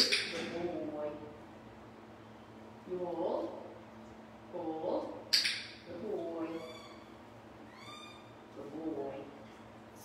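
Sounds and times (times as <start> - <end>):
dog squeaking whines: 7.7 - 8.3.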